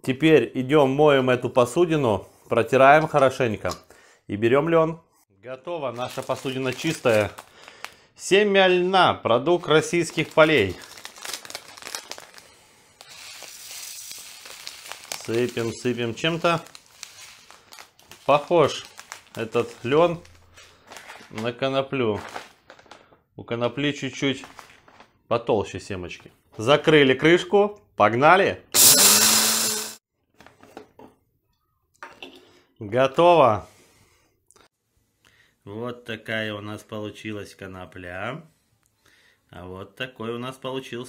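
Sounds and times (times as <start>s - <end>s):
plastic bag crinkling: 5.9s - 8.1s, 9.7s - 23.2s, 24.4s - 25.1s
seeds pouring into a container: 13.0s - 17.9s.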